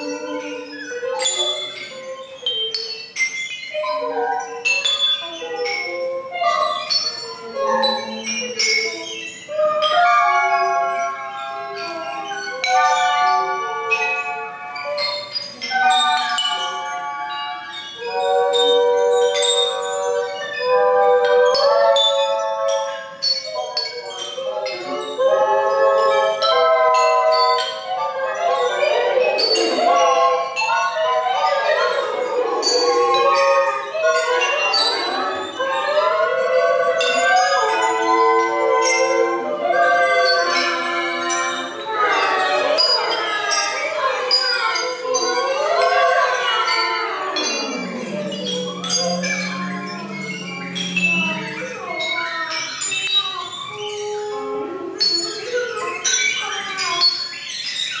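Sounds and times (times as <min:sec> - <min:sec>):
ceramic bell-like tones ringing: 0:00.0 - 0:54.2
held tones sliding in pitch: 0:45.4 - 0:52.6
ceramic shapes struck ringing: 0:46.5 - 0:52.2.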